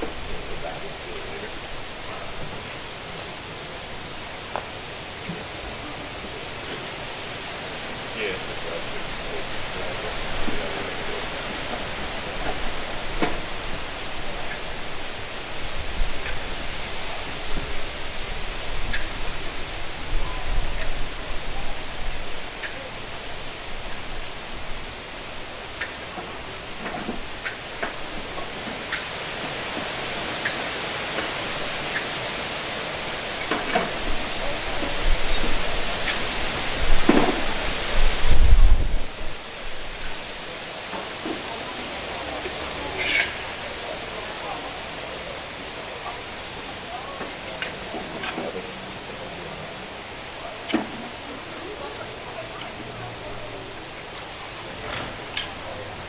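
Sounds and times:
wind buffeting microphone: 33.9s - 40.4s.

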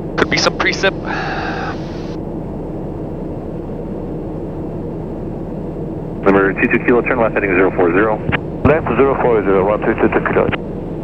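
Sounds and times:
turboprop engine drone: 0.0s - 11.0s.

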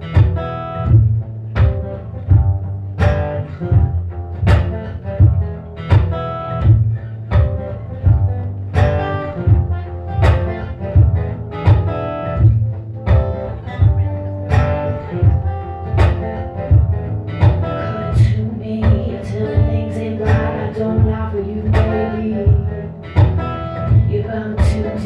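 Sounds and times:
acoustic guitar strumming: 0.0s - 25.0s
woman singing: 17.8s - 25.0s.

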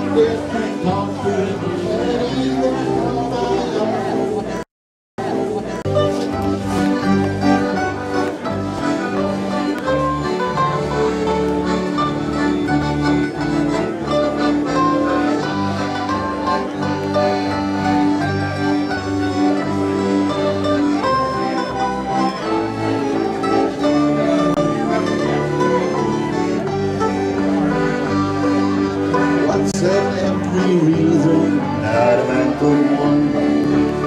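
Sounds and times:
country band playing: 0.0s - 4.6s, 5.2s - 34.0s.

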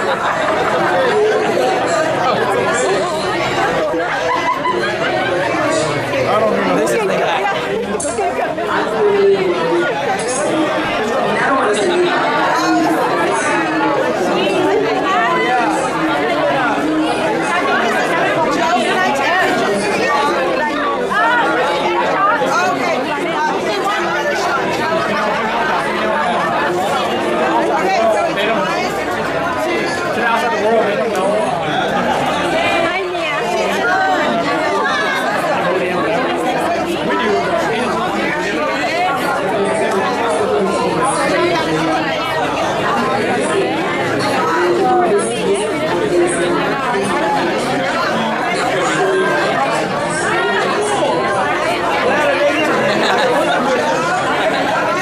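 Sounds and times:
crowd chatter: 0.0s - 55.0s.

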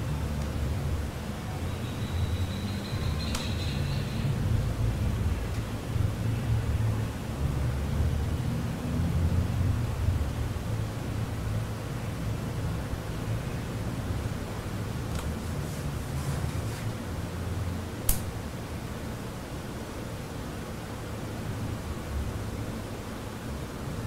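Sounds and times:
sharp click: 18.1s - 18.3s.

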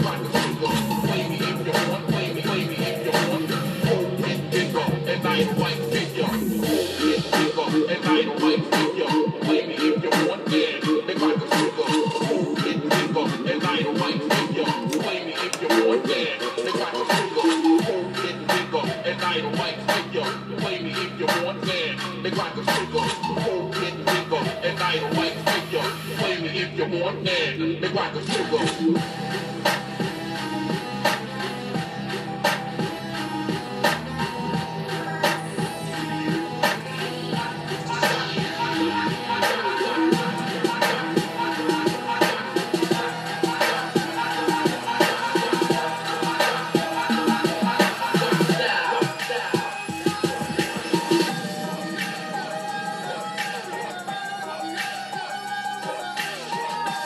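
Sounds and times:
dj mix with steady beat: 0.0s - 57.0s
electronic dance music: 0.0s - 57.0s.

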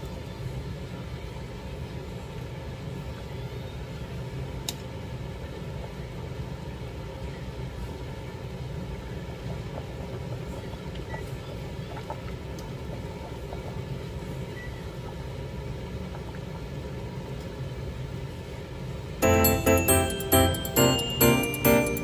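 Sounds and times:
water boiling in a pot: 0.1s - 19.2s.

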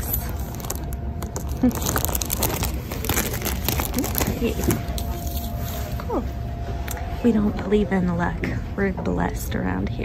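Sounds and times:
plastic packaging crinkling: 0.0s - 6.0s.

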